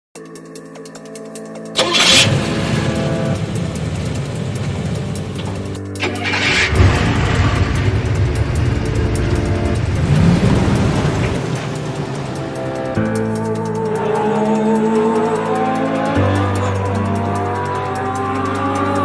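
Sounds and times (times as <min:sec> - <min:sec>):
intro music: 0:00.2 - 0:19.0
car engine rumble revving: 0:01.8 - 0:13.0, 0:13.6 - 0:19.0.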